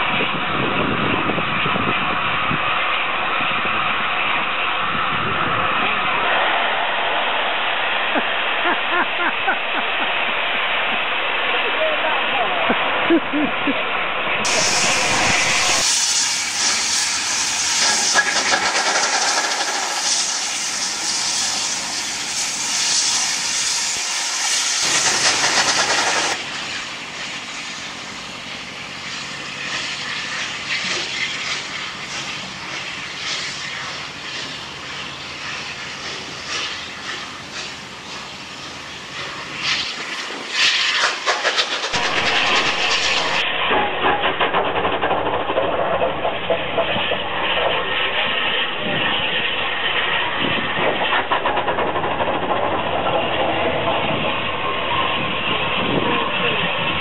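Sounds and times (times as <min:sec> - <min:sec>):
steam hiss: 0:00.0 - 0:57.0
steam locomotive exhaust beats: 0:00.0 - 0:57.0.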